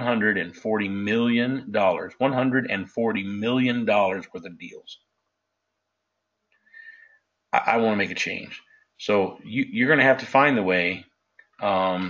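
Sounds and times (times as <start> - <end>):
faint high-pitched sound: 0.0 - 5.0, 7.6 - 11.0, 11.6 - 12.0.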